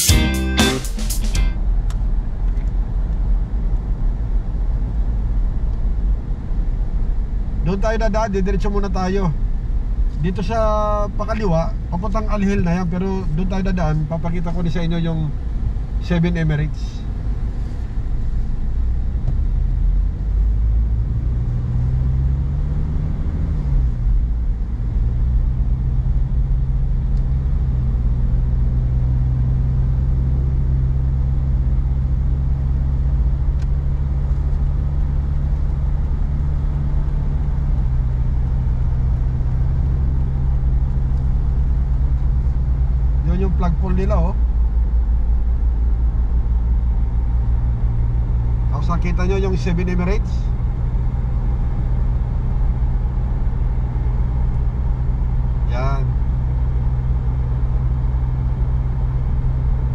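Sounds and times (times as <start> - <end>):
car engine rumble: 0.0 - 59.9
road noise: 0.0 - 59.9.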